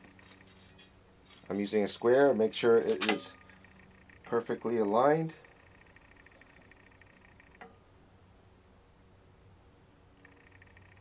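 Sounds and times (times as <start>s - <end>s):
fast high-pitched ticking: 5.3s - 7.6s, 10.2s - 11.0s.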